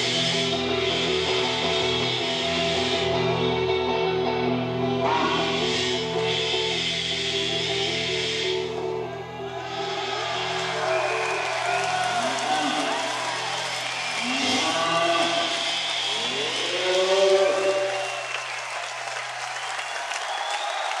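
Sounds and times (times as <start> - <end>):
live rock band drone: 0.0 - 20.4
rising and falling wailing calls: 5.0 - 21.0.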